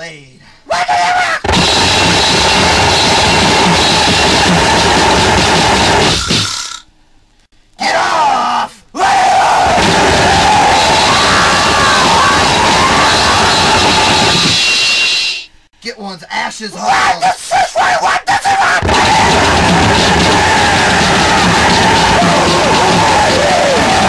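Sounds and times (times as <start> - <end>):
distorted noise music: 1.4 - 6.8, 9.6 - 14.9, 18.8 - 24.0
voices yelling: 7.8 - 14.0, 16.8 - 24.0.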